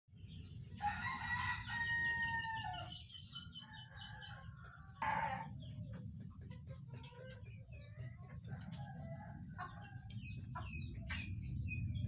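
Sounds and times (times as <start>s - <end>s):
birds calling: 0.1s - 12.0s.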